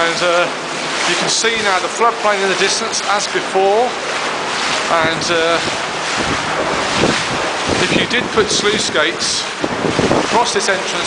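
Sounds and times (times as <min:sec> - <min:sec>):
floodwater rushing: 0:00.0 - 0:11.0
wind buffeting microphone: 0:04.3 - 0:11.0.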